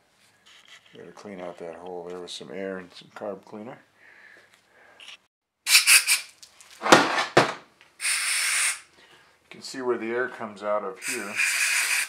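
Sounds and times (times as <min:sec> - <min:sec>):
spray and compressed air hissing: 0:08.0 - 0:08.8, 0:11.0 - 0:12.0.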